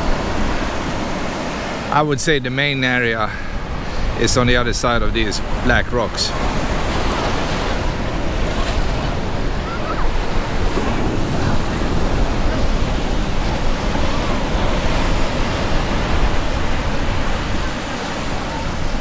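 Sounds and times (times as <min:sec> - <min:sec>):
surf breaking on beach: 0:00.0 - 0:19.0
wind rumbling on microphone: 0:03.4 - 0:19.0.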